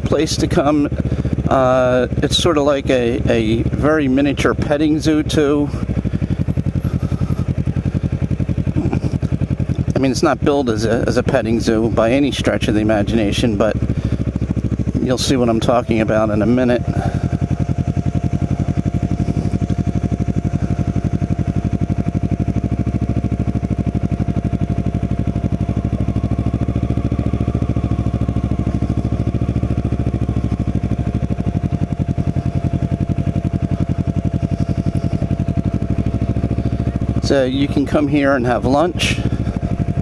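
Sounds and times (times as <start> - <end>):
motorcycle engine running: 0.0 - 40.0.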